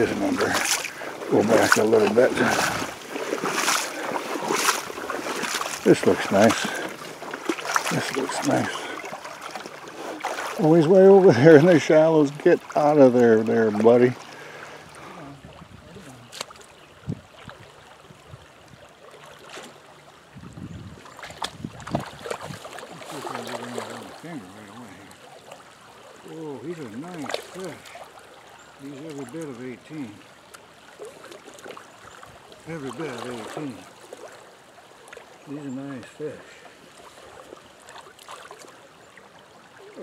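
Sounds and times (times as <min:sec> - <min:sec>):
man's wordless voice: 0:00.0 - 0:03.0, 0:05.4 - 0:07.0, 0:07.8 - 0:09.1, 0:10.5 - 0:14.3, 0:22.9 - 0:25.2, 0:26.2 - 0:28.0, 0:28.8 - 0:30.3, 0:32.6 - 0:33.9, 0:35.4 - 0:36.7
sharp splashes: 0:00.0 - 0:15.4, 0:19.0 - 0:19.9, 0:21.0 - 0:35.6, 0:36.2 - 0:38.8
creek water running and sloshing: 0:00.0 - 0:40.0.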